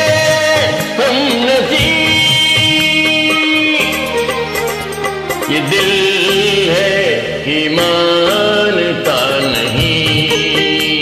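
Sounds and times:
instrumental karaoke backing track: 0:00.0 - 0:11.0.

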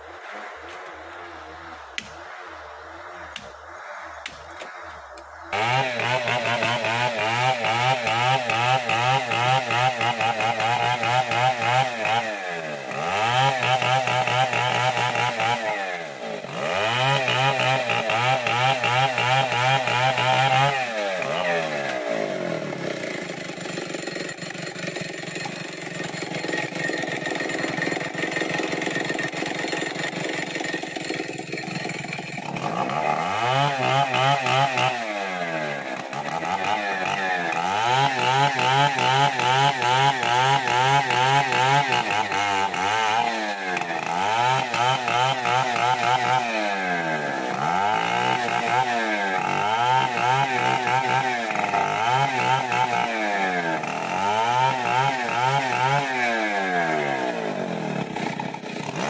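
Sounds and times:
chainsaw cutting log: 0:05.2 - 0:59.0.

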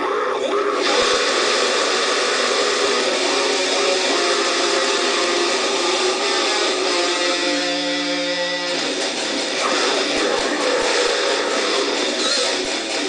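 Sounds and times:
distorted electric guitar metal: 0:00.0 - 0:13.0.

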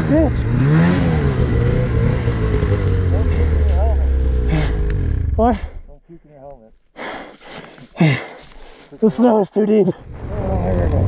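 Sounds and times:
man panting hard: 0:04.5 - 0:04.9, 0:07.0 - 0:08.9.

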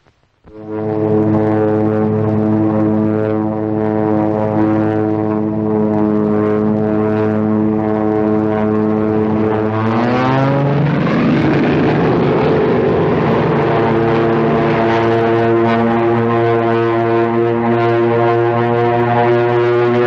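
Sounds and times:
propeller plane engine droning: 0:00.0 - 0:20.0.

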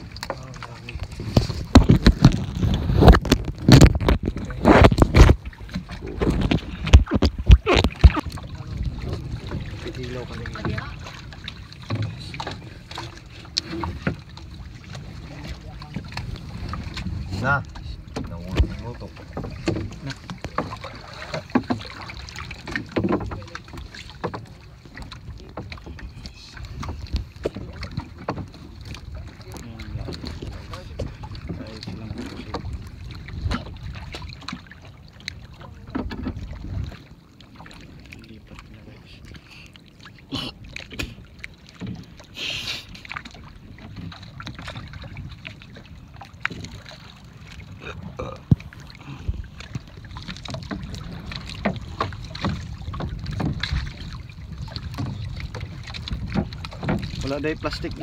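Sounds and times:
wind rumbling on microphone: 0:00.0 - 0:39.4, 0:40.3 - 0:58.0
knocks and clatter on hull: 0:00.0 - 0:58.0.

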